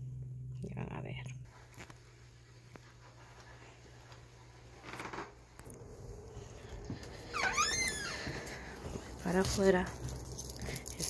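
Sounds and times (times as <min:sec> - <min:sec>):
steady low hum: 0:00.0 - 0:11.0
door hinge squeaking: 0:07.2 - 0:08.3.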